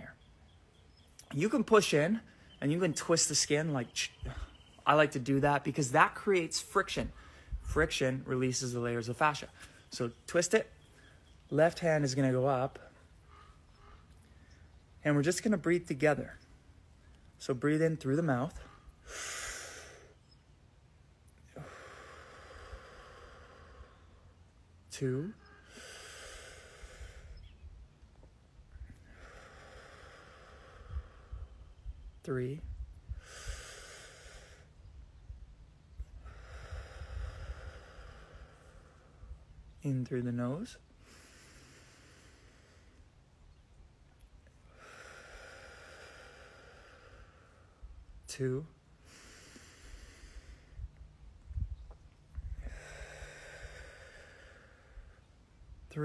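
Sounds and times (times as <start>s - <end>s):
man breathing deeply through mouth: 7.1s - 7.8s, 18.5s - 20.3s, 21.3s - 24.5s, 25.3s - 27.6s, 28.8s - 32.0s, 32.7s - 34.8s, 36.0s - 39.5s, 40.8s - 43.1s, 44.6s - 48.0s, 49.0s - 55.3s.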